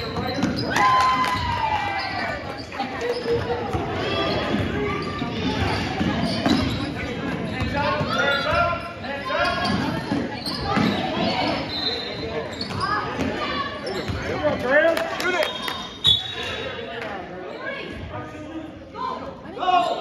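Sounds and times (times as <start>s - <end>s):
sneakers squeaking: 0.0s - 16.9s.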